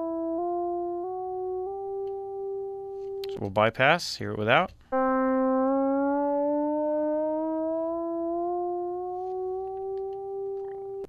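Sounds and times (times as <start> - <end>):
synthesizer tone gliding upward: 4.9 - 11.0.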